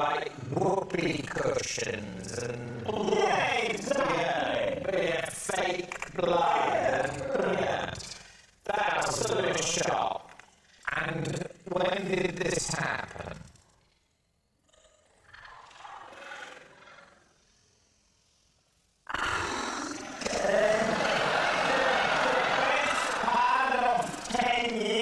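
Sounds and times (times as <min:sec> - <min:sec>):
people laughing: 0:08.8 - 0:09.8, 0:20.1 - 0:25.0
studio audience laughing: 0:20.3 - 0:25.0.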